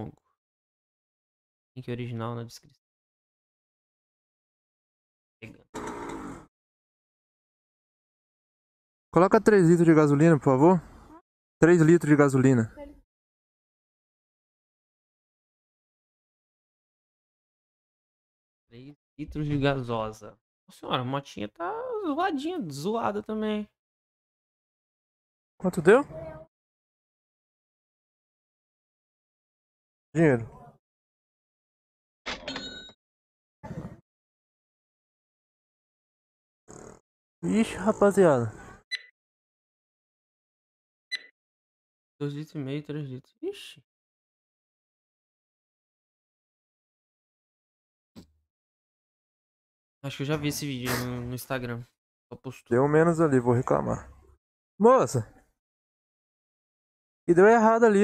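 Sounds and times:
cash register ka-ching: 0:32.3 - 0:32.9
brief hissy sound: 0:50.9 - 0:51.2.

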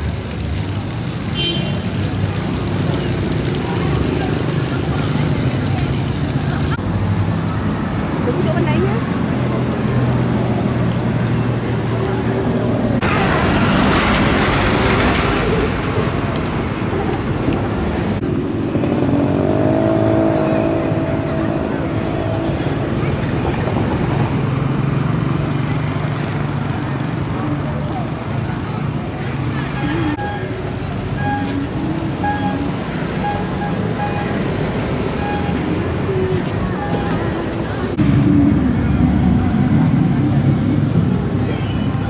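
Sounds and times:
cars passing: 0:00.0 - 0:42.0
engine revving: 0:18.2 - 0:25.2.

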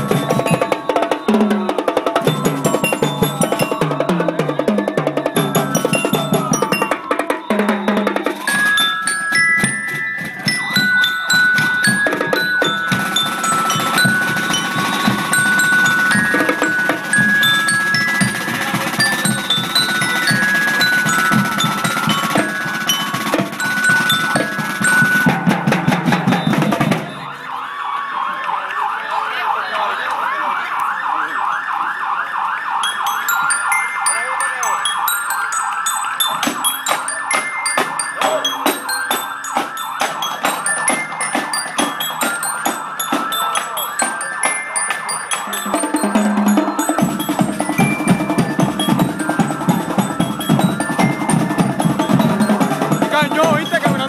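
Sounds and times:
snare and tenor drums: 0:00.0 - 0:27.3, 0:36.3 - 0:54.0
bell lyre notes: 0:02.2 - 0:27.3, 0:32.8 - 0:54.0.

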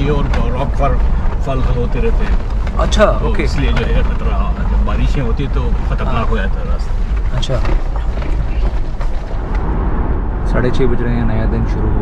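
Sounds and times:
tyres on gravel: 0:00.0 - 0:09.7
car engine rumble: 0:00.0 - 0:12.0.

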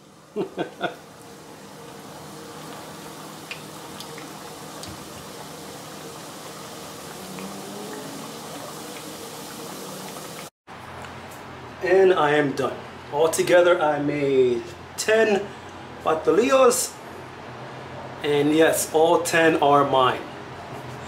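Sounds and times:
food deep-frying in oil: 0:01.0 - 0:10.5
oil popping and crackling: 0:02.6 - 0:10.5.

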